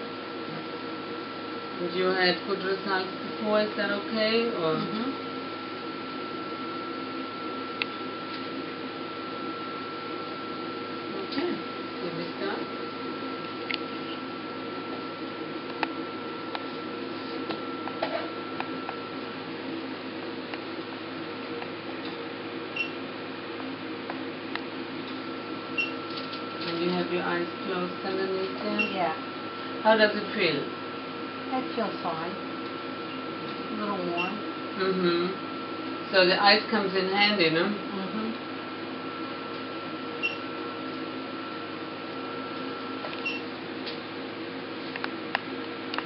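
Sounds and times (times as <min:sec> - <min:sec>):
machine humming steadily: 0:00.0 - 0:46.0.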